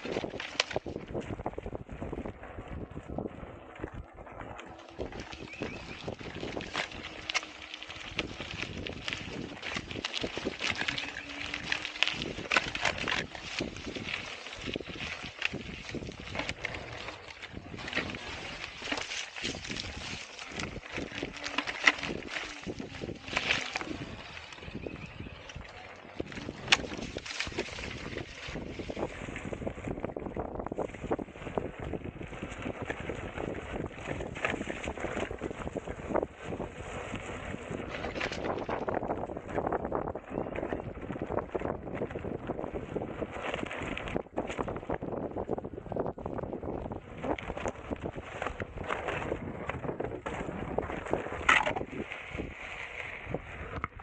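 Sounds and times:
wind over microphone: 0:00.0 - 0:54.0.

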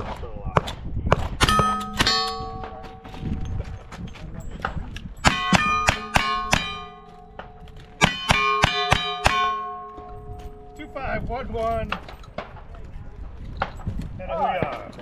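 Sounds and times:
steel plates ringing: 0:01.4 - 0:03.8, 0:05.2 - 0:11.9.

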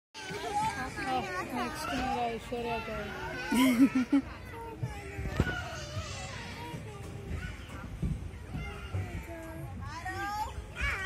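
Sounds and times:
young children chattering: 0:00.2 - 0:11.0.

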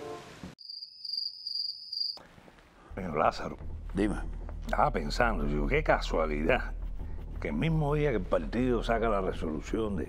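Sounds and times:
crickets chirping: 0:00.6 - 0:02.3.

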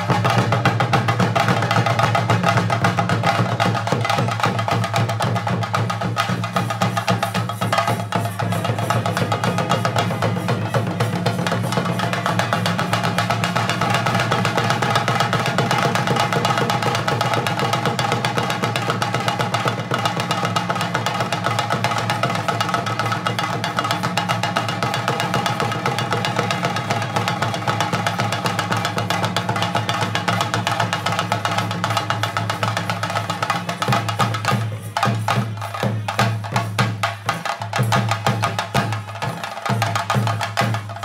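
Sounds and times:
drums beaten rapidly with sticks: 0:00.0 - 0:41.0.

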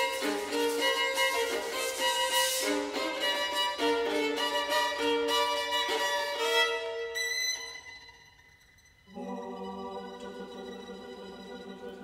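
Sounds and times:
solo violin playing held notes: 0:00.0 - 0:12.0.

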